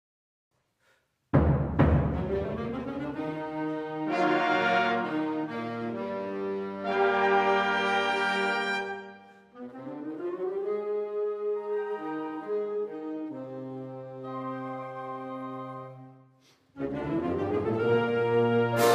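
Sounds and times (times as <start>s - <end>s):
brass chords: 1.4s - 16.2s, 16.8s - 18.9s.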